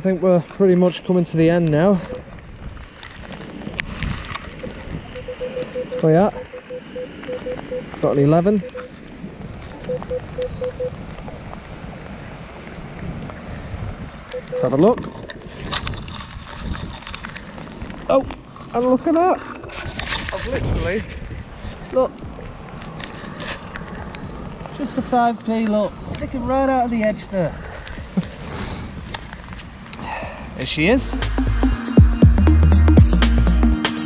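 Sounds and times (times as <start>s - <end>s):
wind buffeting microphone: 0.0s - 31.0s
metal detector beeps: 1.9s - 2.3s, 5.1s - 9.1s, 9.8s - 11.0s, 14.3s - 15.1s.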